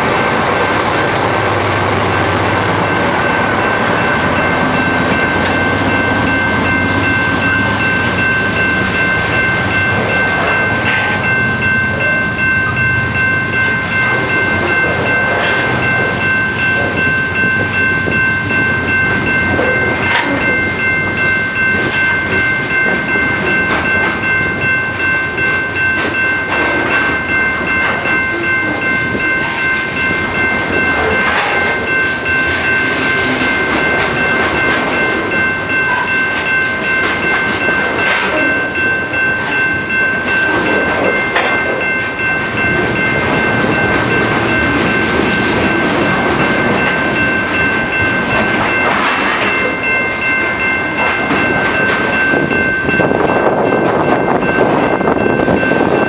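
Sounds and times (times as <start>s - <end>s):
freight train rolling past: 0.0s - 56.0s
wheels clicking over rail joints: 13.6s - 53.0s.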